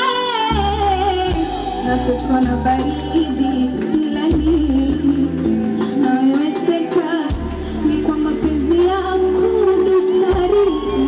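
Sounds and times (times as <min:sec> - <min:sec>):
live band: 0:00.0 - 0:11.0
low bass notes: 0:00.5 - 0:05.8, 0:07.3 - 0:11.0.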